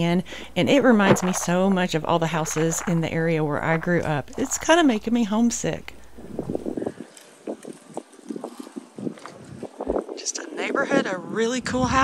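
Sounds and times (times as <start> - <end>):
wind rumbling on microphone: 0.0 - 12.0
soft footsteps: 0.7 - 10.2.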